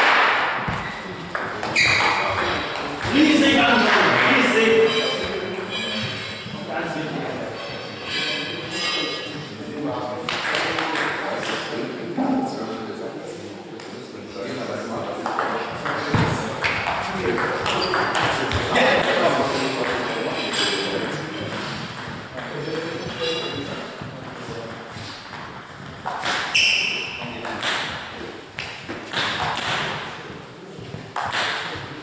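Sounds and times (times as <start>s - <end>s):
players' voices: 0.5s - 32.0s.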